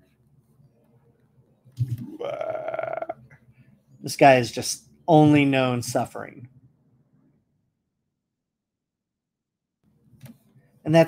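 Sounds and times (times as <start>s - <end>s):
man croaking: 1.8s - 3.2s.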